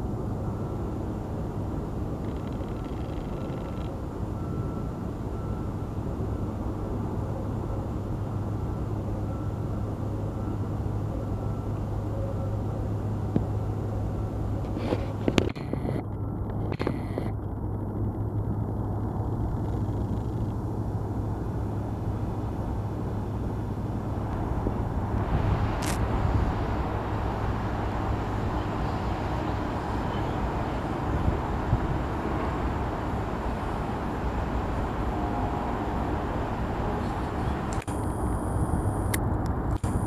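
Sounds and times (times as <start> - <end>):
freight train rumbling on bridge: 20.8 - 37.8
sharp click: 37.7 - 38.1.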